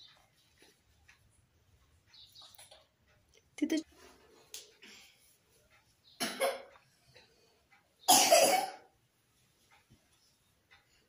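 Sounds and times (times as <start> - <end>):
person coughing: 6.2 - 6.7, 8.1 - 8.9.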